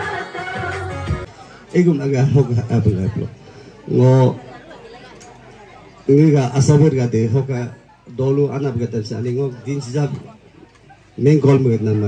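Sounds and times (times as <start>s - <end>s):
man speaking into a microphone: 1.6s - 4.5s, 6.0s - 10.5s, 11.2s - 12.0s.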